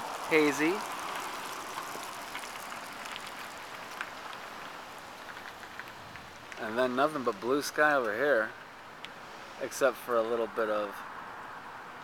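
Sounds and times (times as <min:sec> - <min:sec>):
outdoor background hiss: 0:00.0 - 0:12.0
faint clicks: 0:02.3 - 0:06.7.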